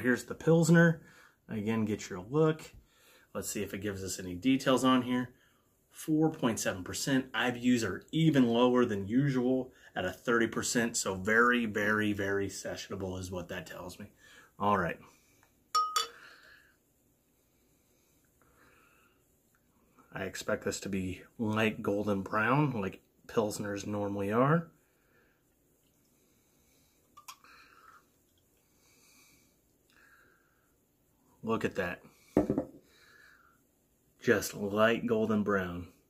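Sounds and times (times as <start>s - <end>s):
glass clink ringing: 15.8s - 16.2s
faint breathy sound: 26.0s - 31.4s.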